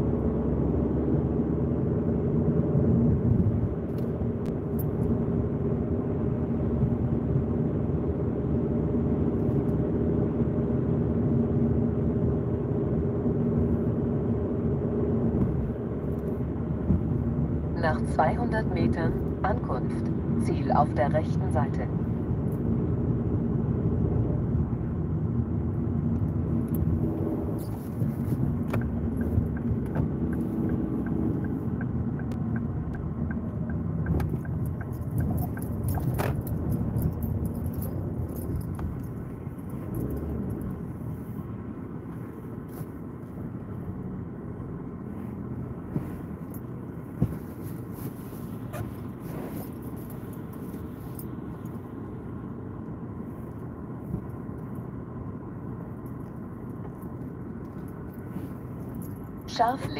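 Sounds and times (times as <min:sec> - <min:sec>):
engine and tyres on wet road: 0:00.0 - 0:59.9
light regular ticking: 0:28.4 - 0:40.7.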